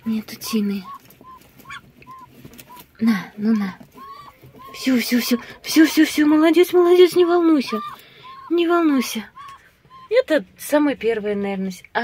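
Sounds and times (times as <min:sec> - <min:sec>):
duck calling softly: 0:00.0 - 0:02.9, 0:07.1 - 0:10.2.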